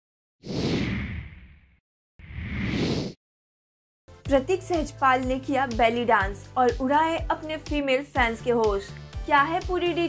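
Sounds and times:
whoosh: 0:00.4 - 0:03.2.

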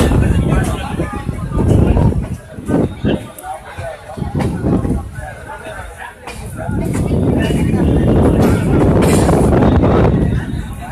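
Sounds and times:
train running on track: 0:00.0 - 0:10.9
wind buffeting microphone: 0:00.0 - 0:10.9.

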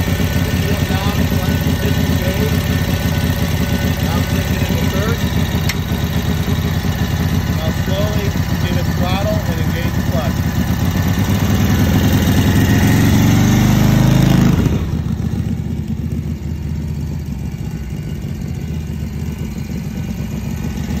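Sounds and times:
motorcycle engine revving and idling: 0:00.0 - 0:21.0.

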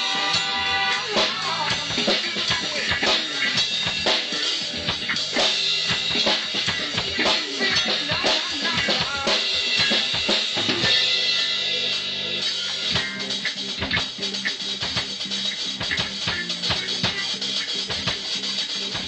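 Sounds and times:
drum kit fast punk beat: 0:00.0 - 0:19.0
pitched music: 0:00.0 - 0:19.0.

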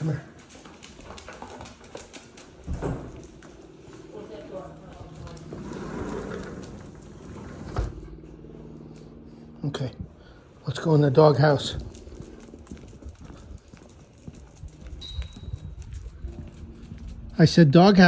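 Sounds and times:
footsteps: 0:00.0 - 0:10.1, 0:11.4 - 0:17.4
dog claws clicking on tile: 0:00.4 - 0:03.7.

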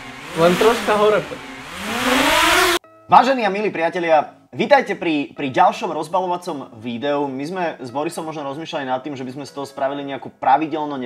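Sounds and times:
drone propellers whirring: 0:00.0 - 0:02.8.

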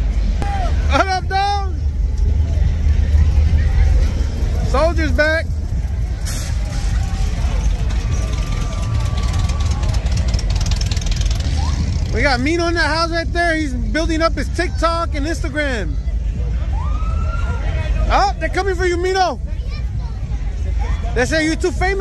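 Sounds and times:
car engines rumbling past: 0:00.0 - 0:22.0.

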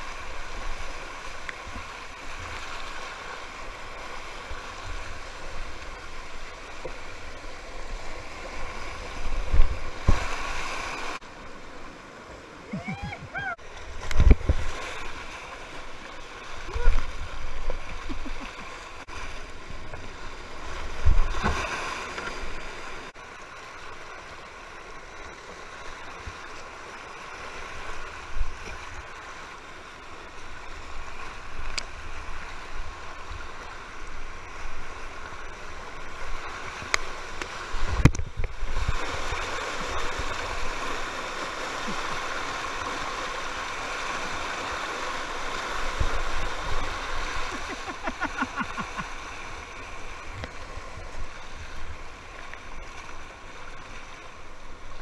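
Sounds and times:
paddle splashing: 0:00.0 - 0:23.2, 0:30.7 - 0:55.0
whitewater rapids rushing: 0:12.6 - 0:19.1, 0:39.0 - 0:52.2.

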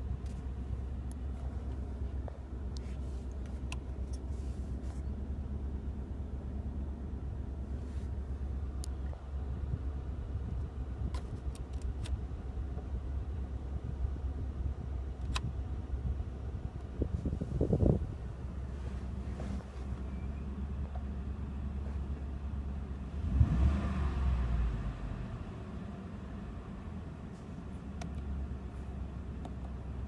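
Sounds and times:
pickup engine idling: 0:00.0 - 0:23.3.

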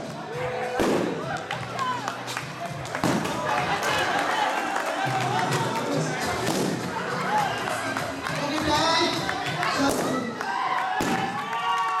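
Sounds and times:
balloon bursting: 0:00.8 - 0:01.3, 0:03.0 - 0:03.4, 0:11.0 - 0:11.4.

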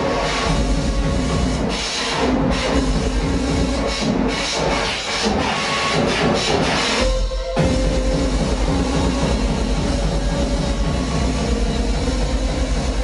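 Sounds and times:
harsh electronic music over pa: 0:00.0 - 0:13.0.

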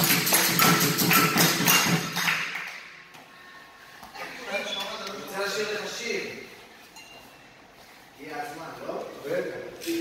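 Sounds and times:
rhythmic hand clapping: 0:00.0 - 0:03.1.

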